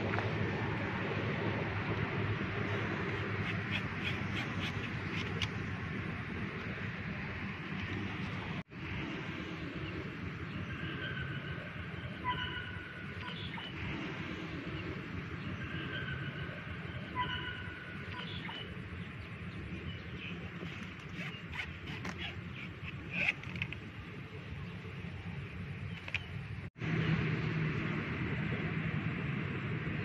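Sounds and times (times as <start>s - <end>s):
outdoor background noise: 0.0s - 30.0s
bird chirping: 3.1s - 5.5s, 14.8s - 23.5s.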